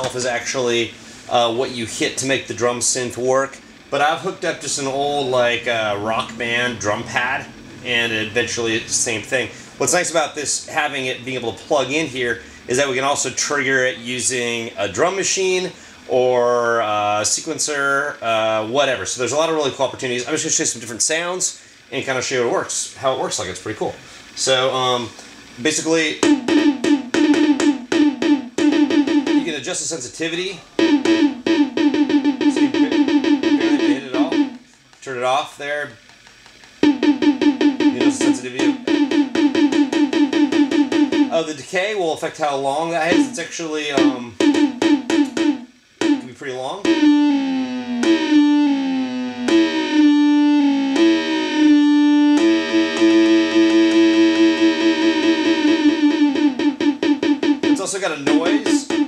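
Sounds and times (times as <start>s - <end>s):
electronic drum hits: 0.0s - 3.0s, 3.9s - 11.6s, 25.6s - 30.1s, 30.8s - 34.8s, 36.7s - 41.7s, 43.0s - 59.0s
sustained tone with rapid flutter: 26.2s - 29.6s, 30.8s - 34.7s, 36.8s - 41.5s, 44.4s - 59.0s.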